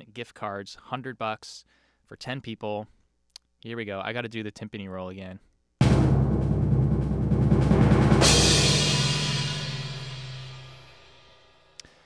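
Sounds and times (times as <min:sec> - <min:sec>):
timpani roll with crash: 0:05.8 - 0:10.9.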